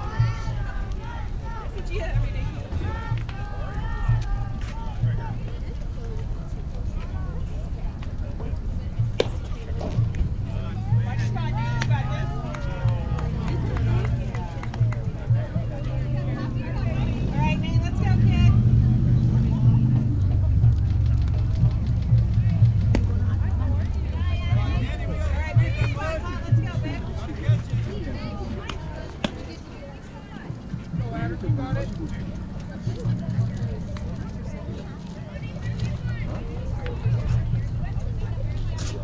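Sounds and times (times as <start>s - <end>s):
heavy low rumble: 0.0s - 29.0s, 30.5s - 39.0s
distant voices calling out: 0.0s - 39.0s.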